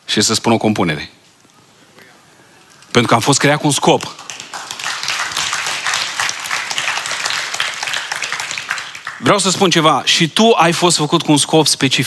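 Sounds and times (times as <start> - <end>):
congregation applauding: 3.6 - 9.8.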